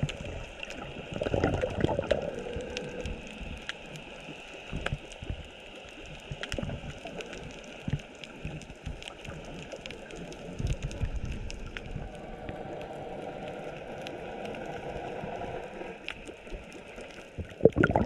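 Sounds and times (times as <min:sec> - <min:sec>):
underwater watery hiss: 0:00.0 - 0:07.8, 0:12.0 - 0:17.0
low rumbles of moving water: 0:00.0 - 0:18.0
sharp clicks and crackles: 0:00.0 - 0:18.0.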